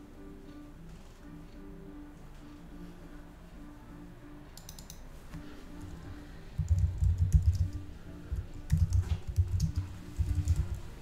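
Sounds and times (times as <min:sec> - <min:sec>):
typing on computer keyboard: 0:04.6 - 0:05.0, 0:06.6 - 0:07.8, 0:08.4 - 0:10.8.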